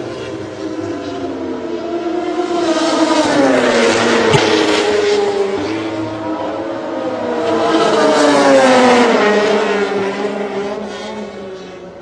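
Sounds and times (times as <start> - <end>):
racing motorcycle passing: 0.0 - 11.3.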